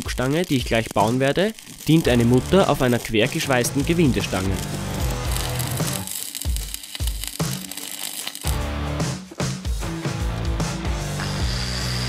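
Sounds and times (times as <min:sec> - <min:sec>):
welding arc crackling: 0:00.0 - 0:09.8, 0:10.7 - 0:12.0
background music: 0:02.0 - 0:12.0.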